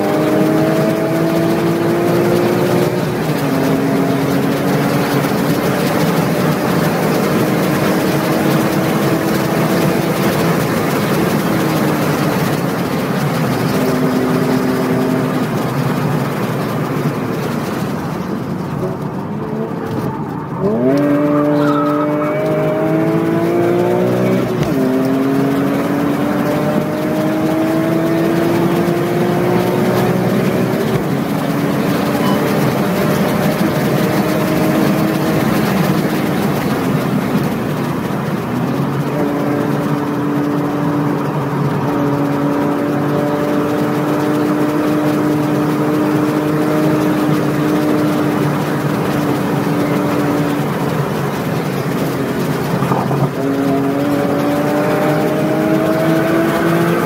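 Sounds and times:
car engine accelerating: 0.0 - 57.0
road and wind noise: 0.0 - 57.0.

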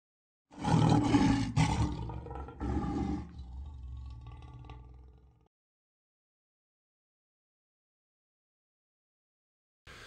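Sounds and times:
lion roaring: 0.5 - 5.5.

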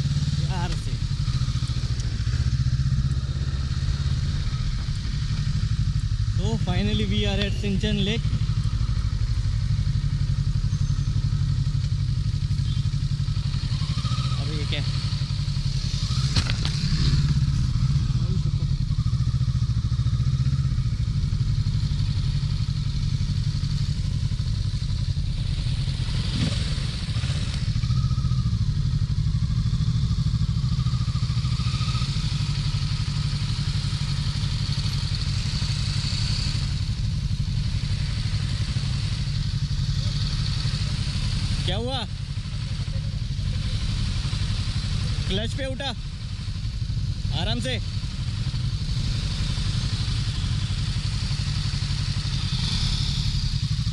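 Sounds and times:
motorcycle engine running at low speed: 0.0 - 53.9.

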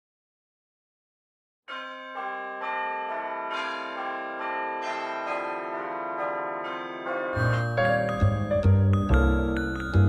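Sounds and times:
bell-like chime tones: 6.6 - 10.0.

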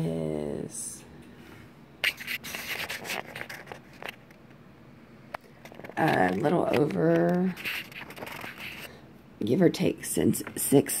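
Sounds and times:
tape measure rubbing on blanket: 2.0 - 3.9, 6.0 - 8.9.

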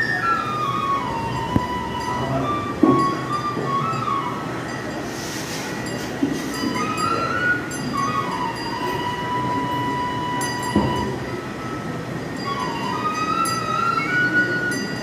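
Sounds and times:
crowd noise: 0.0 - 15.0
flute-like melody: 0.0 - 15.0.

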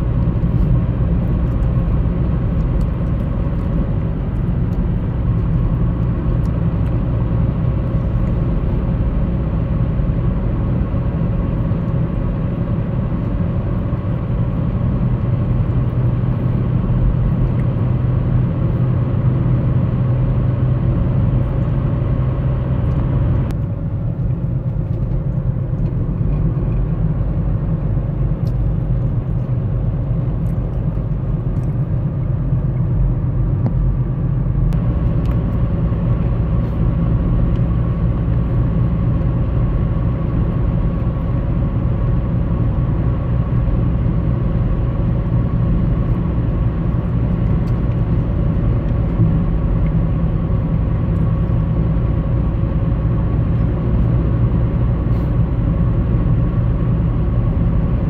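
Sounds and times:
vehicle road rumble: 0.0 - 58.0.

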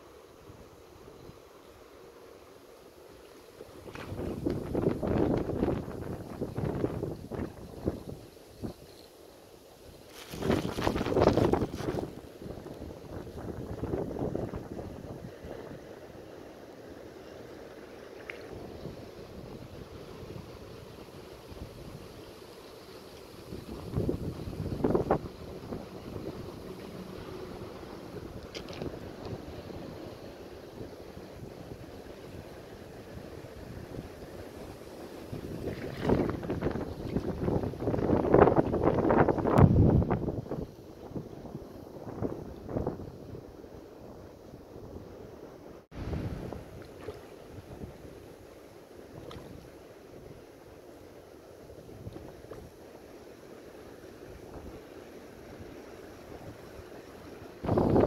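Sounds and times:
wind buffeting microphone: 3.8 - 8.8, 10.1 - 15.9, 23.4 - 45.2, 45.9 - 48.3, 57.5 - 58.0.

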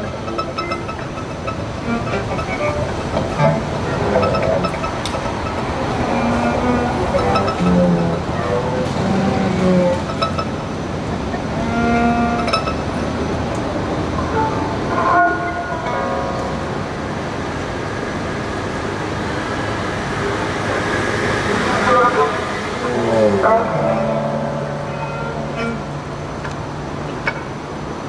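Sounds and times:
violin: 0.0 - 16.8, 20.6 - 27.4
cello: 0.0 - 17.0, 20.3 - 27.6
street traffic noise: 0.0 - 28.0.

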